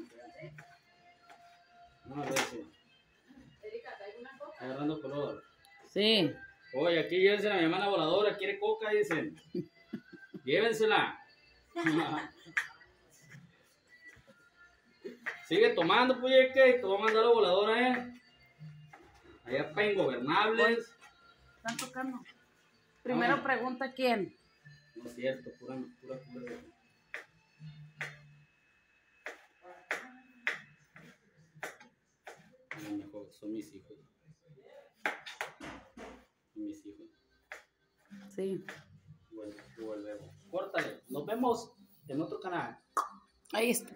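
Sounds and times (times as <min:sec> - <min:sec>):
person laughing: 0:09.5 - 0:10.5, 0:11.8 - 0:12.6.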